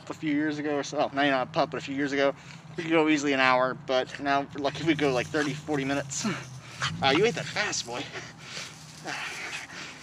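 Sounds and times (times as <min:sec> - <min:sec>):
dog panting: 0:04.0 - 0:10.0.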